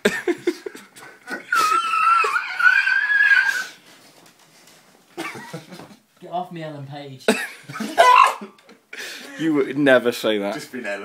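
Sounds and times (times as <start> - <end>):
man squealing: 1.4 - 3.8, 8.0 - 8.6
people laughing: 5.2 - 6.0.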